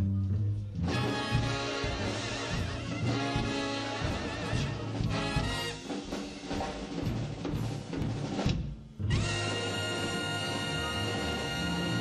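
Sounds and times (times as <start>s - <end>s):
big band playing swing: 0.0s - 12.0s.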